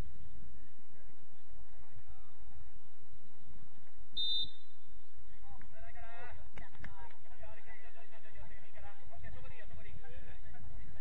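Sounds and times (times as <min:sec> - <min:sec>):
referee's whistle blast: 0:04.2 - 0:04.7.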